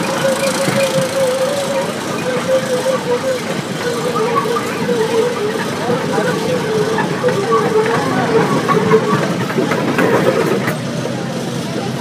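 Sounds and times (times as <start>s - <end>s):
engine humming steadily: 0.0s - 12.0s.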